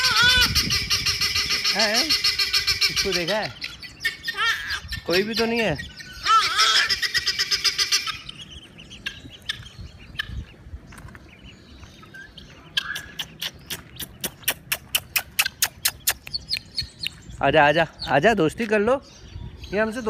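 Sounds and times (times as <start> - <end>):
guineafowl harsh clicking calls: 0.0 - 11.3, 12.0 - 17.2.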